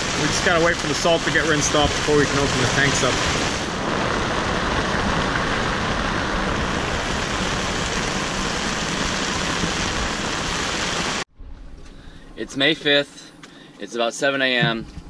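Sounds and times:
storm wind: 0:00.0 - 0:11.2
rain on canvas: 0:00.0 - 0:11.3.

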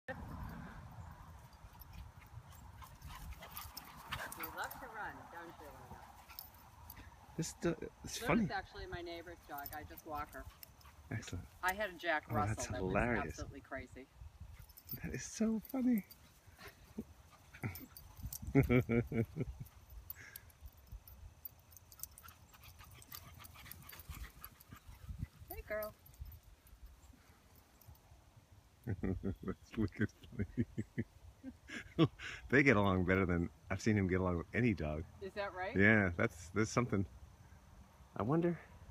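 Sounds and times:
wind rumble on microphone: 0:17.6 - 0:19.6, 0:24.0 - 0:26.4.

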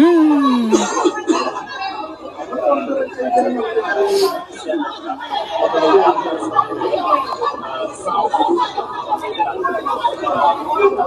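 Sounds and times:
many voices talking and calling out: 0:00.0 - 0:11.0.

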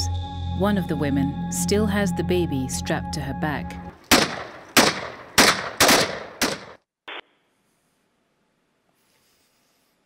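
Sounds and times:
loud gunshots: 0:04.1 - 0:06.8.

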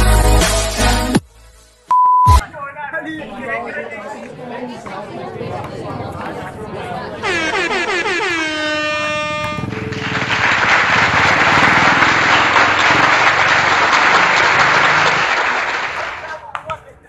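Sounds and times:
horn blast dropping in pitch: 0:07.2 - 0:10.2.

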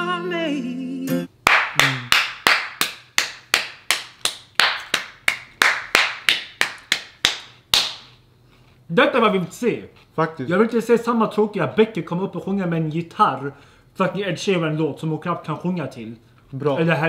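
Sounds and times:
man singing a held note: 0:00.0 - 0:02.2
person clapping slowly: 0:01.5 - 0:08.2.

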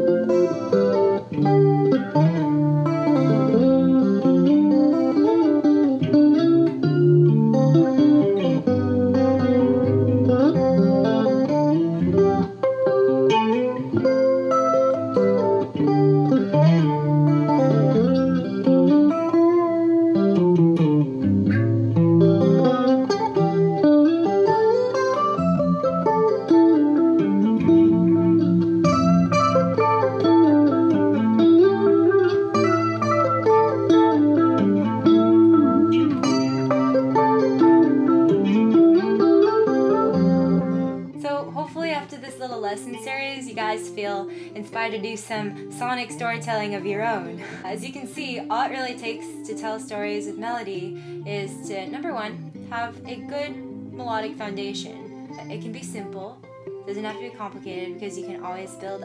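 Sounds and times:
clean electric guitar riff: 0:00.0 - 0:59.0.

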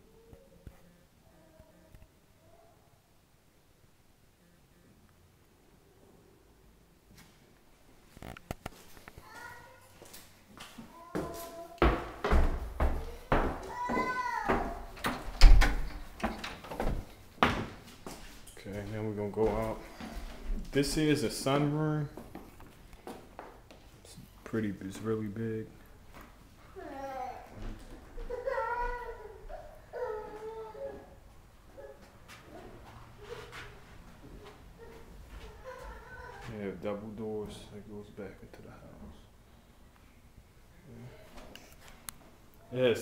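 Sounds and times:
footsteps on wooden stairs: 0:10.0 - 0:18.4.

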